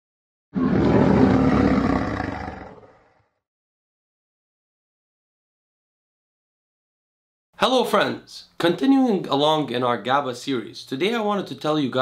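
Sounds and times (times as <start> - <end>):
lion roar: 0.6 - 3.4.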